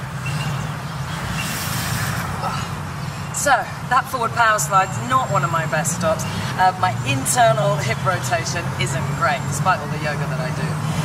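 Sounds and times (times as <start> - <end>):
hiss: 1.3 - 2.4.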